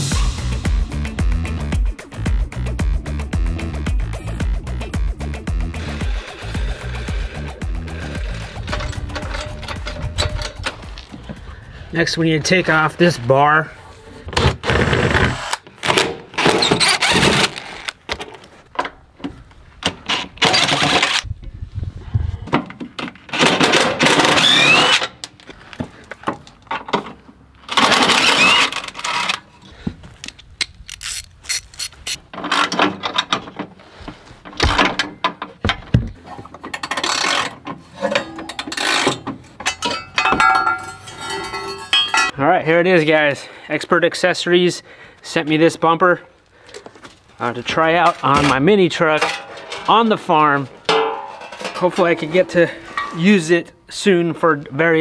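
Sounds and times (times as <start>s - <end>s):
cordless driver whirring: 24.3s - 25.0s.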